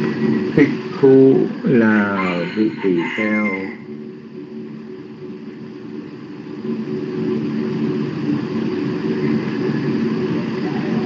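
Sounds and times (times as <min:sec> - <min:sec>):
low mechanical drone: 0:00.0 - 0:11.0.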